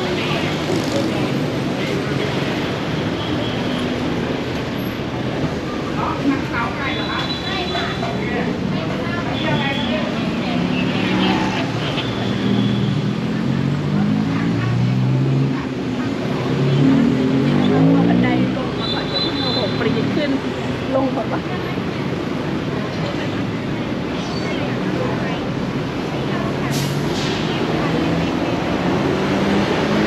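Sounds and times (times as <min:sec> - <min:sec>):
people talking: 0:00.0 - 0:04.0, 0:05.3 - 0:30.0
car and motorbike traffic: 0:00.0 - 0:30.0.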